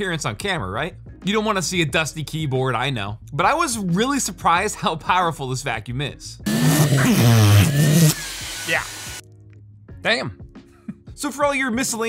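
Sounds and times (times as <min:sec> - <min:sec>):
wavering voice through suction: 0:06.5 - 0:08.9
handheld vacuum hiss and whine: 0:06.5 - 0:09.2.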